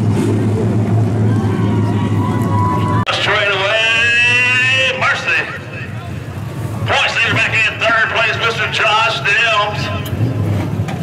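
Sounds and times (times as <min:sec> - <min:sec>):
man talking: 0:03.1 - 0:06.2, 0:06.8 - 0:10.1.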